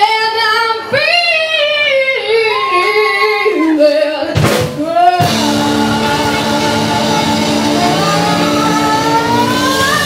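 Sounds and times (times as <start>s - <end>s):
live rock band playing: 4.3s - 10.0s.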